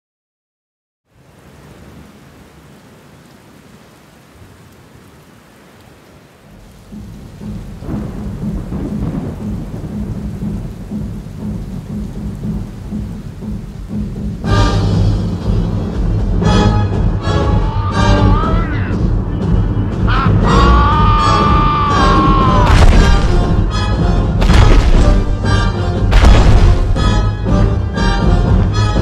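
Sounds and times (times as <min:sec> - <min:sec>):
steady rain-like hiss: 0:01.1 - 0:29.0
deep thunder-like rumble: 0:06.5 - 0:16.5, 0:22.1 - 0:27.8.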